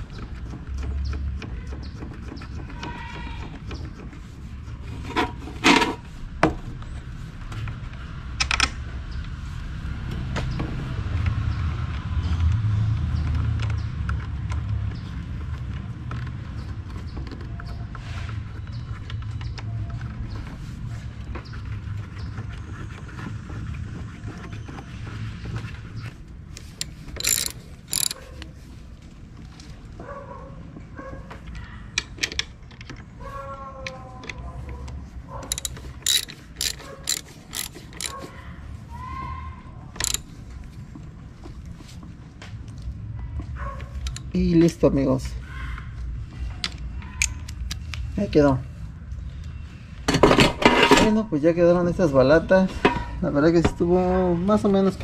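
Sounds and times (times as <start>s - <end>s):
metal clinks of tools: 26.6s - 28.2s, 35.5s - 38.2s, 40.0s - 40.2s
ratchet wrench clicking: 26.6s - 28.5s, 35.5s - 38.2s, 40.0s - 40.3s.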